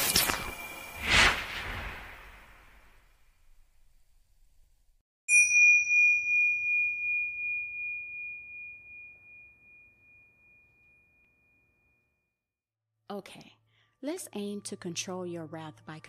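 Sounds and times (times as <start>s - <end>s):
bell ding ringing: 5.3s - 11.6s.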